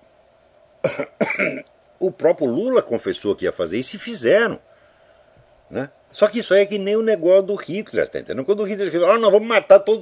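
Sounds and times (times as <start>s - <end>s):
man coughing: 0.8s - 1.7s.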